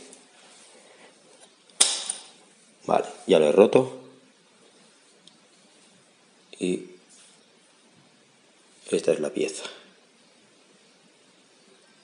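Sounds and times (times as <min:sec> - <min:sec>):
sharp metal snap: 0:01.7 - 0:02.4.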